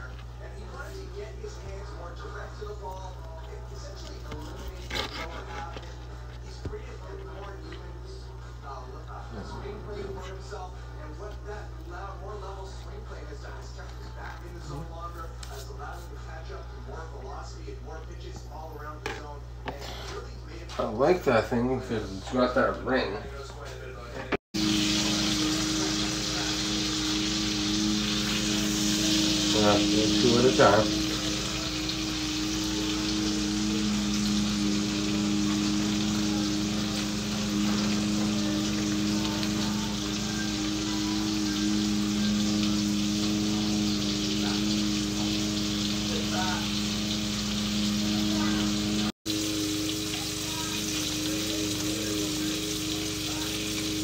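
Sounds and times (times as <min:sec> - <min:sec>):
faint background speech: 0:00.0 - 0:21.1, 0:50.0 - 0:54.0
range hood fan humming: 0:00.0 - 0:54.0
meat sizzling in a frying pan: 0:24.6 - 0:54.0.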